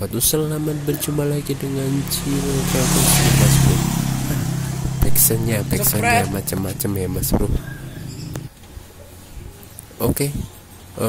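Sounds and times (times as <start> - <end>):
motorcycle engine idling: 0.4 - 8.5
rush of noise: 0.6 - 8.5.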